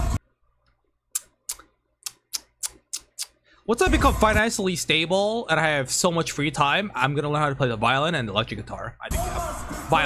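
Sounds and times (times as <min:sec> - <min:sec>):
sharp computer clicks: 0:01.2 - 0:03.4.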